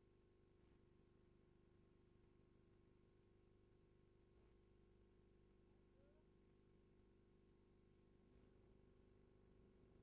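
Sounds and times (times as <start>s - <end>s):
faint steady hum and hiss: 0.0s - 10.0s.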